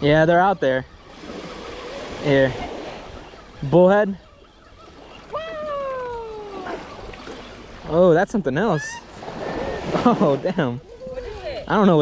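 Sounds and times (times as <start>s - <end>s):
small waves washing on sand: 0.0s - 12.0s.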